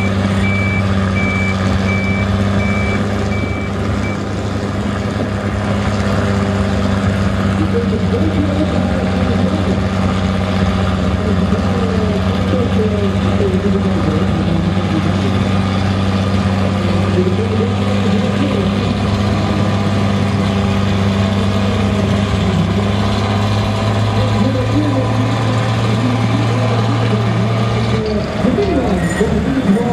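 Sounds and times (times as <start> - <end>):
tractor diesel engine running: 0.0 - 29.9.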